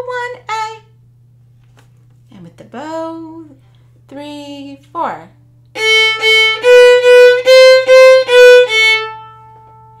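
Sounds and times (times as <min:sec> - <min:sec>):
violin bowed notes: 0:05.8 - 0:10.0.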